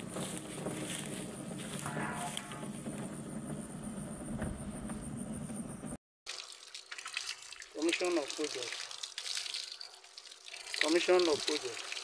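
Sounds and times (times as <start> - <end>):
outdoor ambience: 0.0 - 12.0
insect whining: 1.4 - 5.8
tap water splashing over hands: 6.3 - 12.0.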